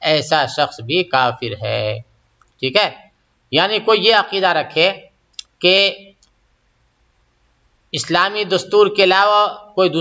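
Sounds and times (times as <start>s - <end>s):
faint sharp click: 6.2s - 6.4s.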